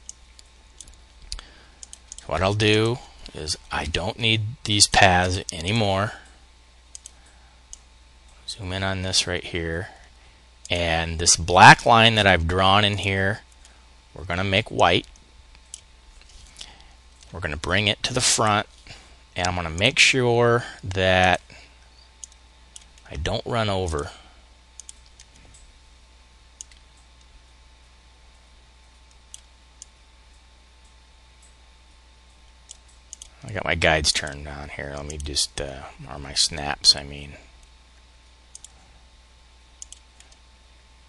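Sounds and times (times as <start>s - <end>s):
faint computer clicks: 0.0s - 3.4s, 5.4s - 8.4s, 24.8s - 25.7s, 32.4s - 33.4s, 38.5s - 38.8s, 39.8s - 40.4s
low steady room hiss: 0.0s - 41.0s
steady low hum: 0.0s - 41.0s.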